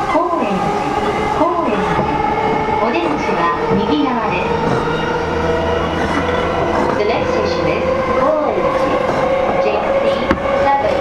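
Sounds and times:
electric train running hum: 0:00.0 - 0:11.0
steady tones: 0:00.0 - 0:11.0.

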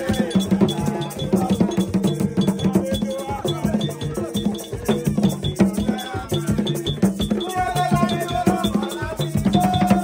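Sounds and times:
hand drums struck with palms: 0:00.0 - 0:10.0.

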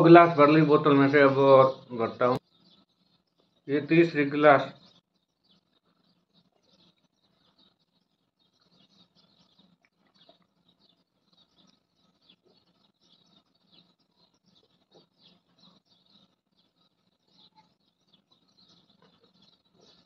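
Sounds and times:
faint small clicks and chirps: 0:04.8 - 0:20.0.

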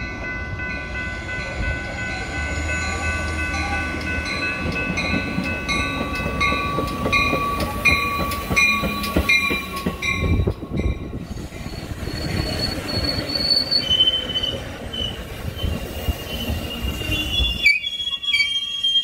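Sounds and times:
crossing bell ringing: 0:00.0 - 0:14.3
train wheels rumbling: 0:00.0 - 0:19.0
train wheels squealing: 0:01.2 - 0:19.0.

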